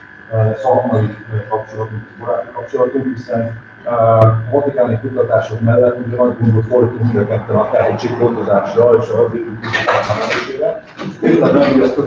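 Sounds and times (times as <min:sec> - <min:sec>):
steady faint tone: 0:00.0 - 0:12.0
person talking: 0:00.3 - 0:12.0.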